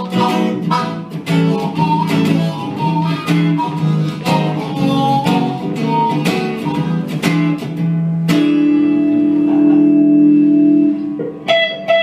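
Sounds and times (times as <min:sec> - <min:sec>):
blues electric guitar: 0:00.0 - 0:12.0
harmonica holding notes: 0:00.0 - 0:12.0.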